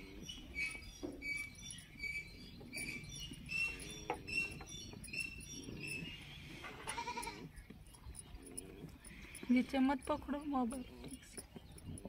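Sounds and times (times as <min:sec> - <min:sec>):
goat bleating: 0:06.6 - 0:07.6.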